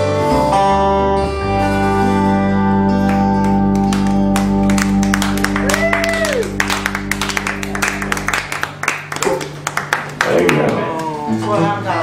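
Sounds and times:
guitar band final chord: 0:00.0 - 0:11.8
audience clapping: 0:03.0 - 0:11.3.

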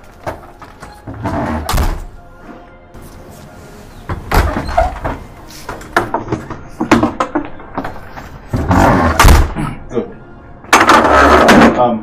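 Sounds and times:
door knocks and clunks: 0:00.2 - 0:02.2, 0:04.1 - 0:07.9, 0:08.5 - 0:09.6.

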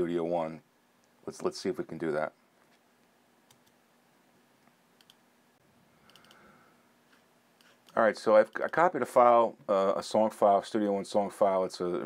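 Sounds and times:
computer mouse clicks: 0:03.5 - 0:03.8, 0:05.0 - 0:05.2, 0:06.0 - 0:06.4.

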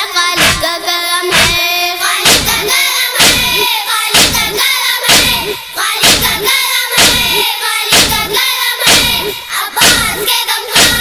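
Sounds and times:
boys chanting: 0:00.0 - 0:11.0
hand striking chest: 0:00.4 - 0:00.7, 0:01.3 - 0:01.6, 0:02.2 - 0:03.6, 0:04.2 - 0:10.2, 0:10.8 - 0:11.0.

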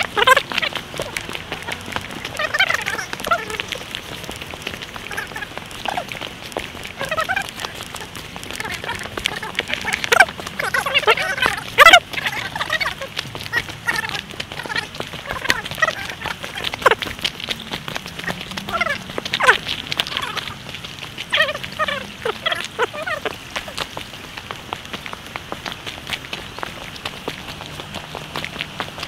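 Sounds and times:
footsteps crunching on gravel: 0:00.0 - 0:29.0.

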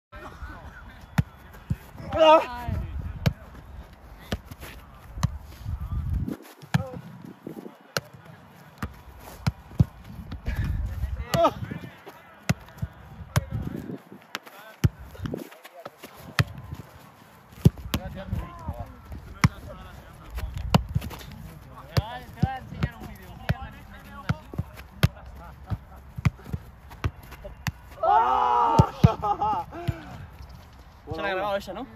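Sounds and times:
people shouting: 0:02.0 - 0:02.6, 0:27.9 - 0:29.2.

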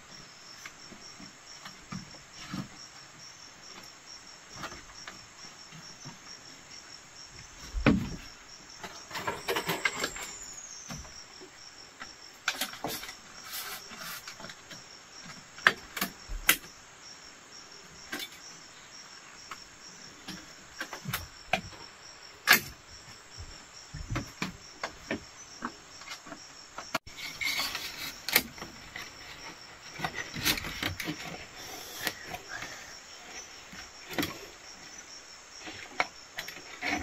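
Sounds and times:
insects chirring: 0:00.0 - 0:37.0.

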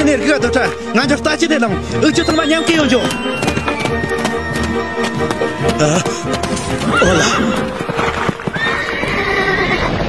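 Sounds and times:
horse hoofbeats galloping: 0:00.0 - 0:10.0
horse whinnying: 0:02.0 - 0:10.0.

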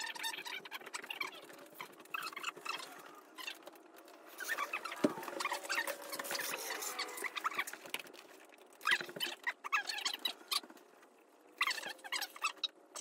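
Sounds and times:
rustling and small squeaks: 0:00.0 - 0:13.0.

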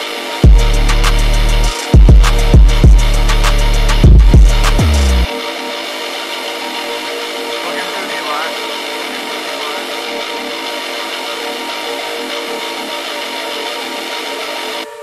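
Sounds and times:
booming bass and drum hits: 0:00.4 - 0:01.0, 0:02.0 - 0:05.3
sustained melodic notes: 0:00.4 - 0:15.0.

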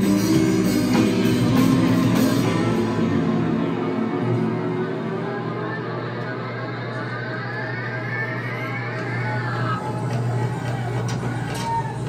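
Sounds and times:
droning experimental band music: 0:00.0 - 0:12.0
high tone rising in pitch: 0:00.0 - 0:12.0
steady low hum: 0:00.0 - 0:12.0.

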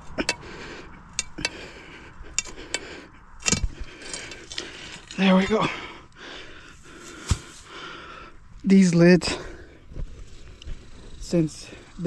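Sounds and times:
breathing: 0:00.4 - 0:08.5.

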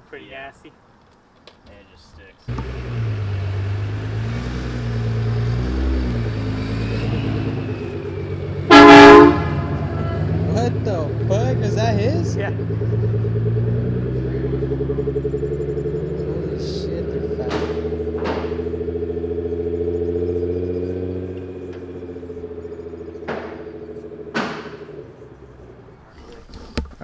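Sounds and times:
car engine pulling away: 0:02.5 - 0:27.0.

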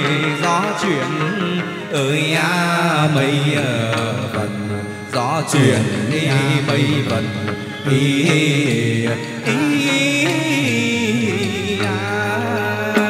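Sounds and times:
instrumental accompaniment: 0:00.0 - 0:13.0
person singing ornamented vocals: 0:00.0 - 0:13.0.

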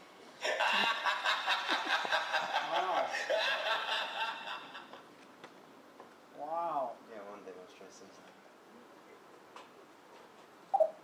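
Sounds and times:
people laughing: 0:00.4 - 0:05.0.

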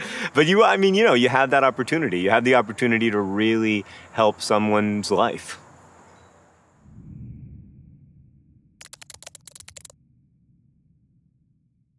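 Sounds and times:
faint low drone: 0:06.8 - 0:08.8, 0:09.9 - 0:11.9
typing clicks: 0:08.8 - 0:09.9.

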